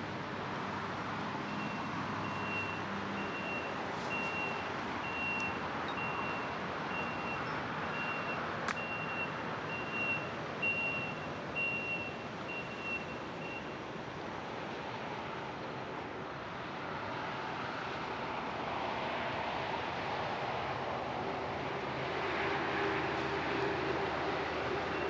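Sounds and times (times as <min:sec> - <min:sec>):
road traffic noise: 0:00.0 - 0:25.0
vehicle reversing alarm beeping: 0:01.5 - 0:13.8.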